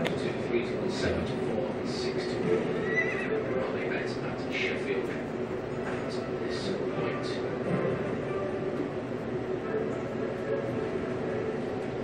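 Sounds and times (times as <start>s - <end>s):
horse whinny: 2.8s - 3.3s.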